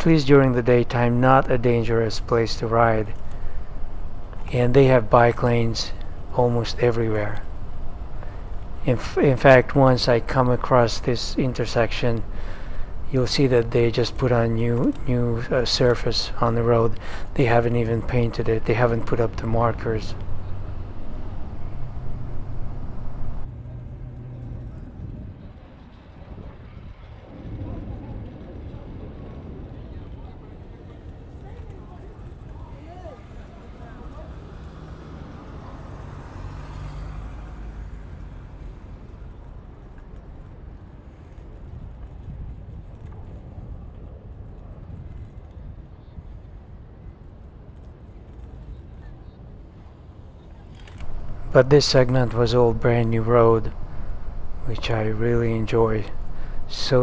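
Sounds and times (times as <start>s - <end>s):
scooter wheel and road noise: 0.0s - 57.0s
traffic: 0.0s - 57.0s.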